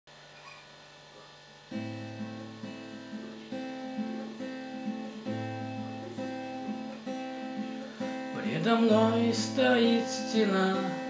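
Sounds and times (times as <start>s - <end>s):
acoustic guitar strumming chords: 1.7s - 11.0s.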